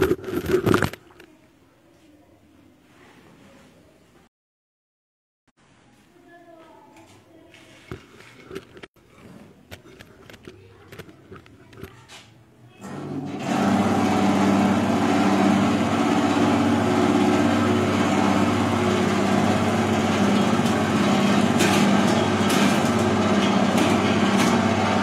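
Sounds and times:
machine motor humming: 12.8 - 25.0.

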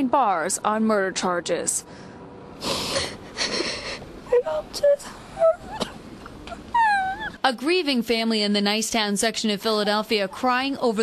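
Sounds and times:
woman sobbing: 2.6 - 7.4.

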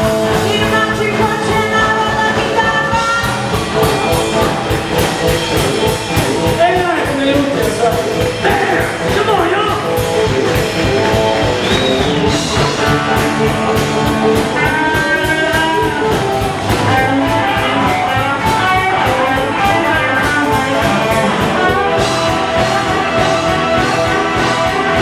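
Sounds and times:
drum kit: 0.0 - 25.0
electric bass: 0.0 - 25.0
electric guitar lines: 0.0 - 25.0.

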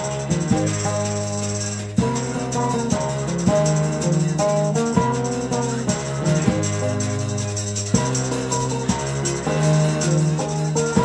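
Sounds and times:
electric bass line: 0.0 - 11.0
keyboard notes: 0.0 - 11.0
shaker percussion: 0.0 - 11.0.

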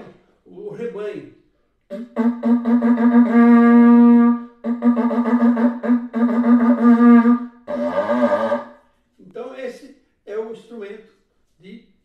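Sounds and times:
animal horn blasts: 1.9 - 8.7.

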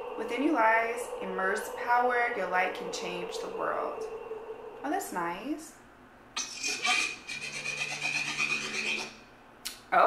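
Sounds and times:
steady high tone: 0.0 - 9.1
low hum: 0.0 - 9.2
grainy pulsing rasp: 6.4 - 9.1.

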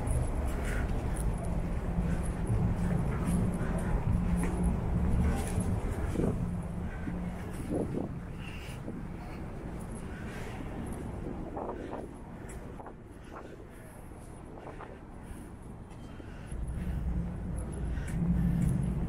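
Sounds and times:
street noise: 0.0 - 19.0.

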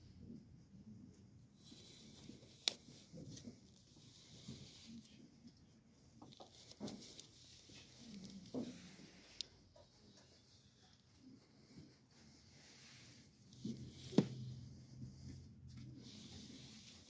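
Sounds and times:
books sliding on a shelf: 12.4 - 15.4.

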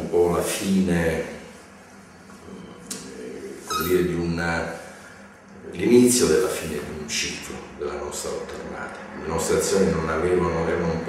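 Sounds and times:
man speaking: 2.4 - 4.8, 5.6 - 11.0.

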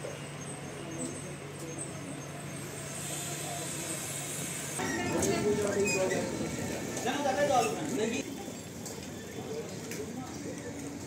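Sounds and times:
traffic hum: 0.0 - 11.0
hiss: 2.7 - 4.8.

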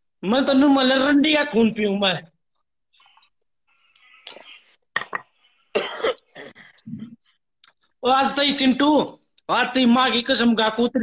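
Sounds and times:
person coughing: 5.7 - 6.7
person clearing throat: 5.8 - 7.2.

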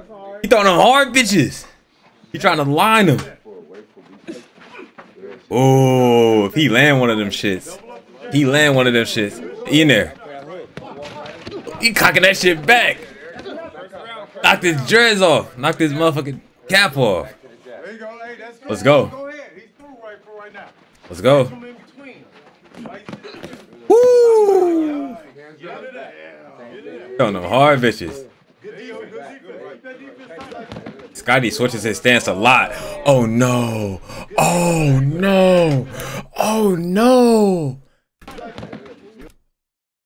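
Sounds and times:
man shouting woo: 23.9 - 25.2, 33.1 - 37.8
muffled voices: 28.0 - 39.1.

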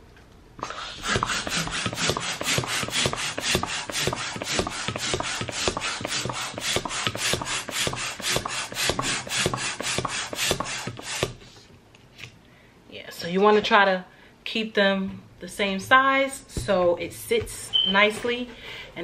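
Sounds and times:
hand pump rasping air: 0.6 - 11.4.

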